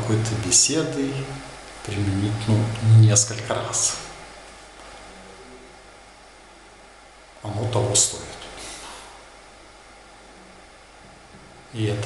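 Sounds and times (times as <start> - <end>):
faint low hum: 0.0 - 12.0
steady hiss: 0.0 - 12.0.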